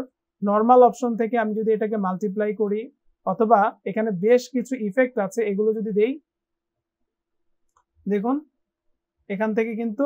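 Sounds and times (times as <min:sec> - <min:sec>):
person speaking: 0:00.0 - 0:06.2, 0:08.0 - 0:08.5.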